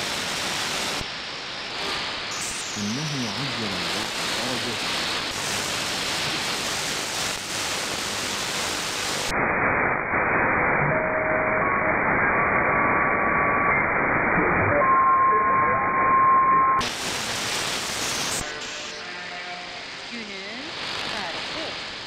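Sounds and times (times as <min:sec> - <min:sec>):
shortwave radio static hiss: 0:00.0 - 0:14.9, 0:16.8 - 0:22.0.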